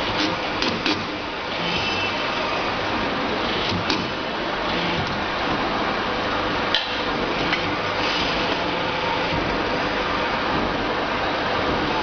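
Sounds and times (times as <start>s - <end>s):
machine noise with hum: 0.0s - 12.0s.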